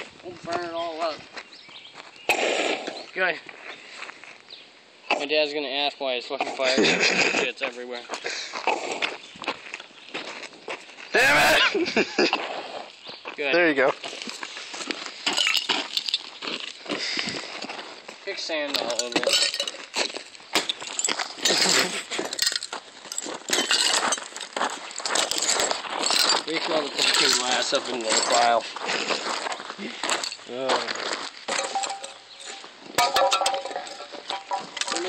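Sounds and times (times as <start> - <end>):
broken glass clinking on gravel: 15.2 - 16.4, 18.7 - 28.5, 30.1 - 30.5, 31.5 - 35.0.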